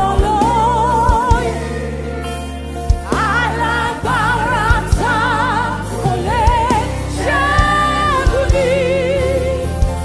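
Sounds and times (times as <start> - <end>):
bass line: 0.0 - 10.0
gospel singing with vibrato: 0.0 - 10.0.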